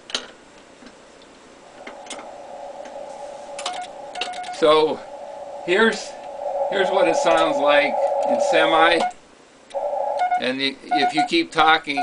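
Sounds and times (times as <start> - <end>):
radio receiver hiss: 1.6 - 11.3.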